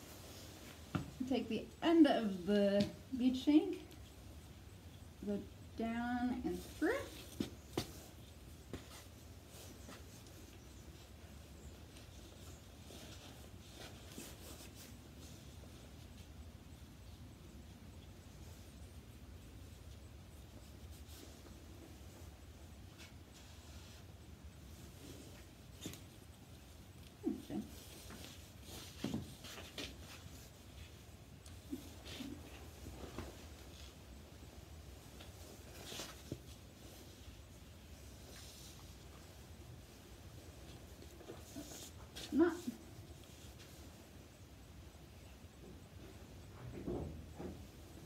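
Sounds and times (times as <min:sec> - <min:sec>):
rope and harness rustling: 0:06.0 - 0:17.2, 0:18.5 - 0:44.3.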